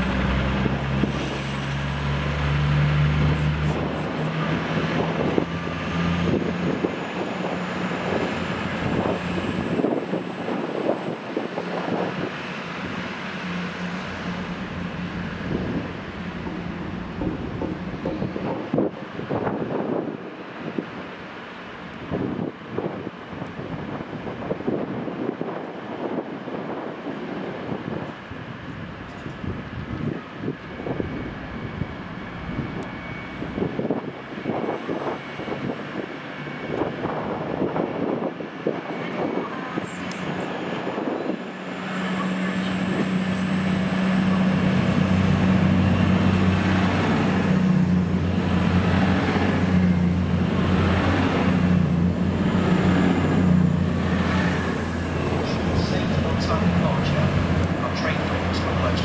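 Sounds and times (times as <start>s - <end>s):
diesel engines droning: 0.0s - 59.0s
train rumbling with knocks: 0.0s - 59.0s.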